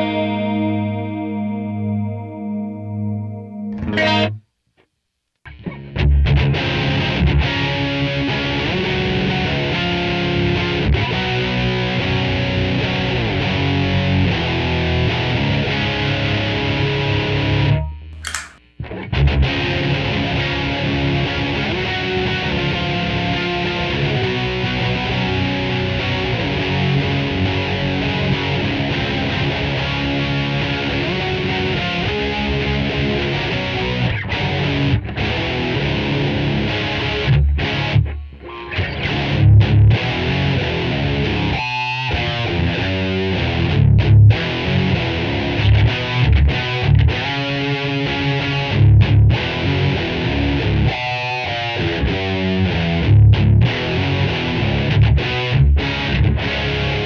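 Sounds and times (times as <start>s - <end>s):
electric guitar with chorus: 0.0s - 4.5s, 5.5s - 57.0s.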